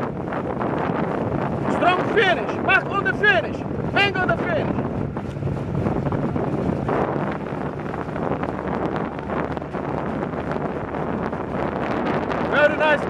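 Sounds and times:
water washing past: 0.0 - 13.0
wind buffeting microphone: 0.0 - 13.0.

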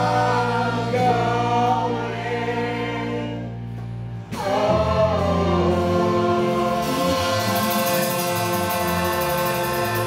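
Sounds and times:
lead and chorus singing: 0.0 - 3.6, 4.3 - 10.0
instrumental accompaniment: 0.0 - 10.0.

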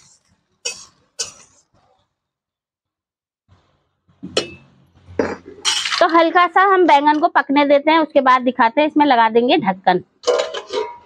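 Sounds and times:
metal spatula clinking on cookware: 10.2 - 11.0.

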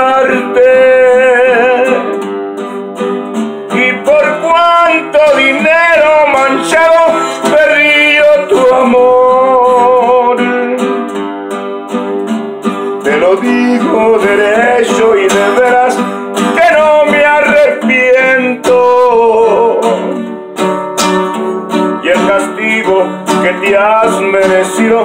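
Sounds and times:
twelve-string acoustic guitar: 0.0 - 25.0.

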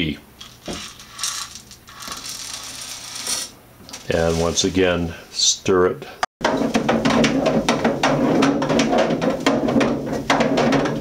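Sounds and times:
granules poured into plastic jug: 0.4 - 3.5.

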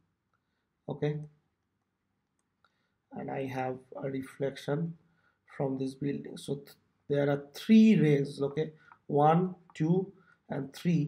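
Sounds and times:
person speaking: 3.1 - 11.0.

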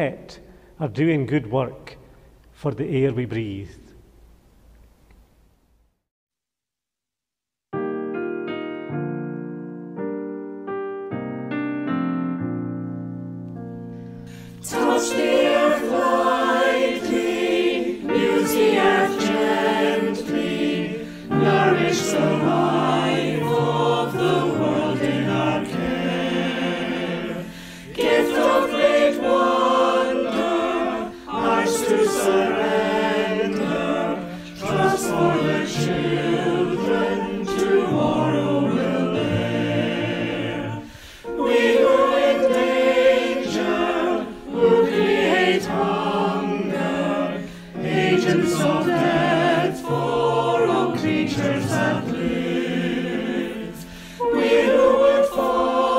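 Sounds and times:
keyboard accompaniment: 7.8 - 55.9
choir singing a hymn: 14.3 - 55.9.

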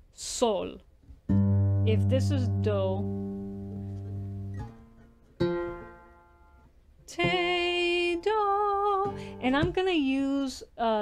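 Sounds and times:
cigar box guitar plucked notes: 1.3 - 9.8.

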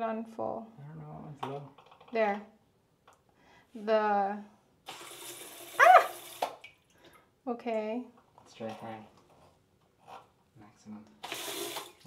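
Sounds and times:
water jet spraying into toilet: 4.9 - 6.6, 11.2 - 12.0.

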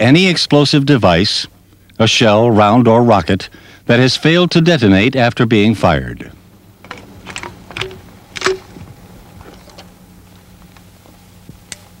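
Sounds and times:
sharp metallic clack: 6.9 - 8.7.

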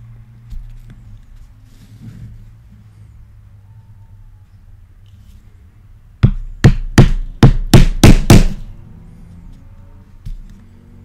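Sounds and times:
chisel punching through leather: 6.2 - 8.6.

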